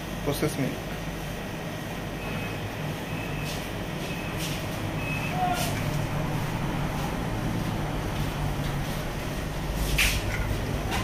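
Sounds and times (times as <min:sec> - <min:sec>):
low mechanical hum: 0:00.0 - 0:11.0
short high-pitched beeps: 0:02.2 - 0:04.4, 0:05.0 - 0:05.4.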